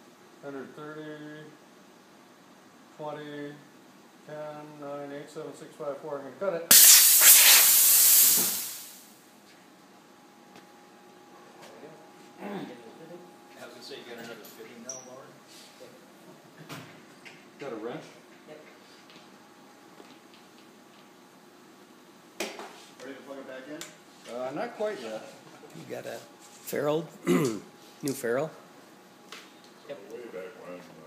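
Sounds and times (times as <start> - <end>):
compressed air hissing: 6.7 - 9.2.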